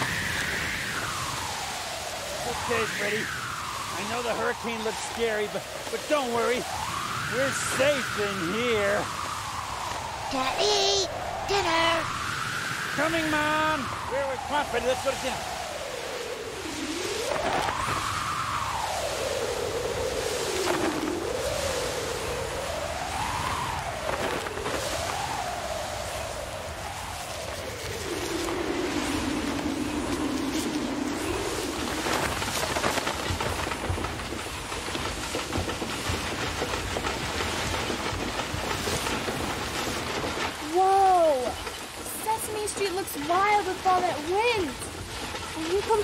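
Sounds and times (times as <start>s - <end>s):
rain: 0.0s - 46.0s
rushing wind: 0.0s - 46.0s
whistling wind: 0.0s - 46.0s.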